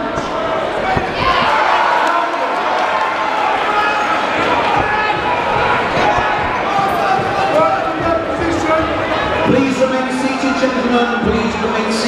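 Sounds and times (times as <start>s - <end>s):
crowd shouting and talking: 0.0s - 12.0s.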